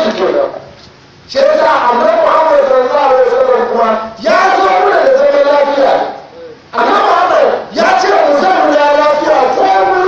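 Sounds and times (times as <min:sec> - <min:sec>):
man preaching into microphone: 0:00.0 - 0:10.0.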